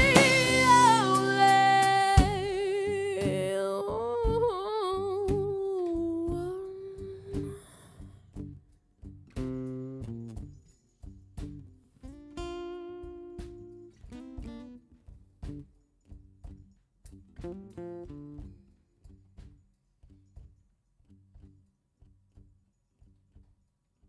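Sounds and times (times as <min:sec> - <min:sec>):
woman singing with vibrato: 0:00.0 - 0:08.1
picked acoustic guitar notes: 0:00.0 - 0:20.3.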